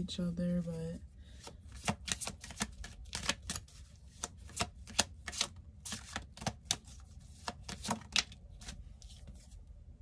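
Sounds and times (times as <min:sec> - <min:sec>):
cards being shuffled by hand: 0:01.4 - 0:09.6.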